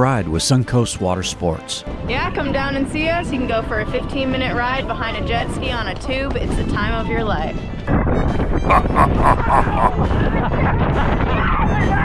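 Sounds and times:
people yelling and laughing: 0:08.7 - 0:10.0.

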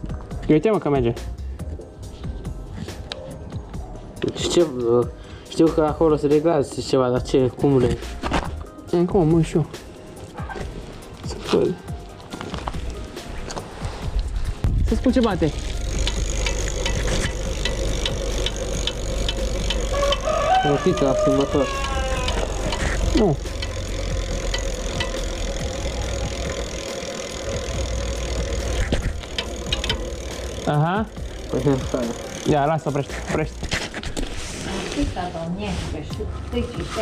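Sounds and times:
bicycle chain clicking and rattling: 0:10.0 - 0:35.1
steady hum: 0:14.6 - 0:20.5, 0:21.6 - 0:34.4
voices: 0:17.6 - 0:28.9.

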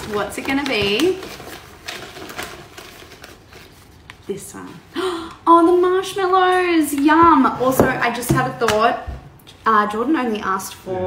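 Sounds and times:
rustling of wrapped packets: 0:00.0 - 0:05.0.

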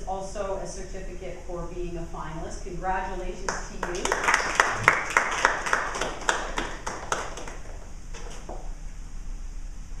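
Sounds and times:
people clapping: 0:03.5 - 0:08.5.

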